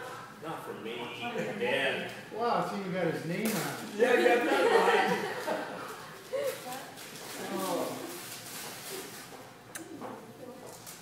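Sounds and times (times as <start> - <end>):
people talking and laughing: 1.2 - 2.0, 3.8 - 8.2.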